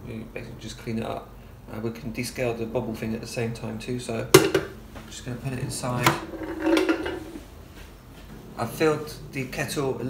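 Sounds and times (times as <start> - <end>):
metallic kettle clatter: 6.0 - 7.4.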